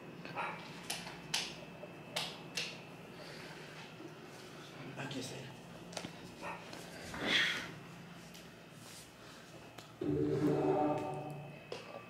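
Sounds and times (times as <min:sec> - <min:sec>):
pitched tone from tv speakers: 0:10.0 - 0:12.0.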